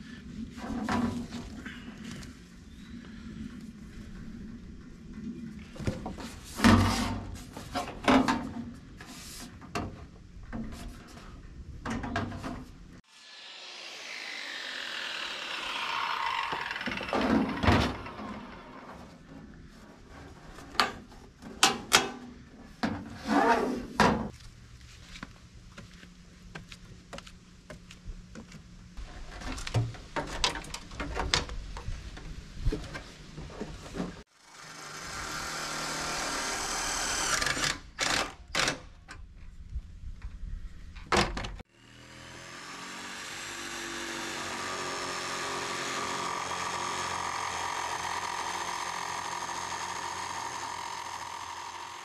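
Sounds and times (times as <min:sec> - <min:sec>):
circular saw blade whine coasting down: 0:13.1 - 0:19.2, 0:34.4 - 0:37.4, 0:41.7 - 0:52.0
cordless drill driving a screw: 0:34.5 - 0:38.7, 0:43.0 - 0:52.0.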